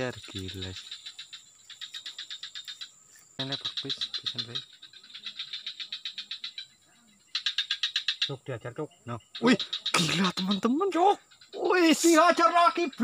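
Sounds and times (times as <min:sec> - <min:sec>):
rapid high chirps: 0:00.0 - 0:06.7, 0:07.3 - 0:13.0.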